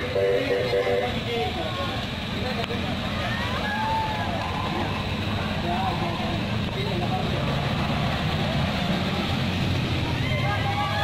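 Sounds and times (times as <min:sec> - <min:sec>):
cars driving past: 0:00.0 - 0:11.0
engine and tyre noise on road: 0:00.0 - 0:11.0.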